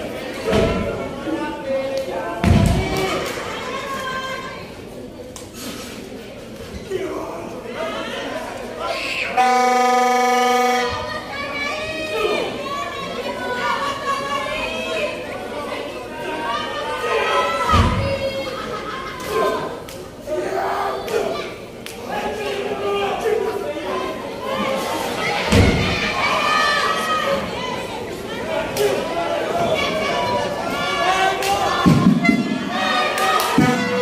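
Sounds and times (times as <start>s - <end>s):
crowd shouting: 7.7s - 34.0s
horn sounding steady note: 9.3s - 11.4s.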